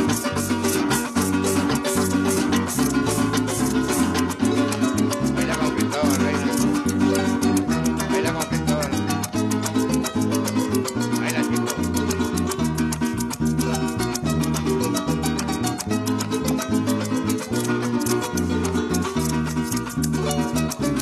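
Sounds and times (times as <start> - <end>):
harp melody: 0.0 - 21.0
maracas shaking: 0.0 - 21.0
strummed cuatro: 0.0 - 21.0.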